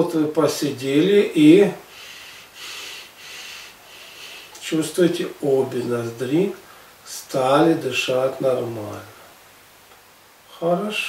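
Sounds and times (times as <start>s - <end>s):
man breathing through nose: 1.9s - 4.6s.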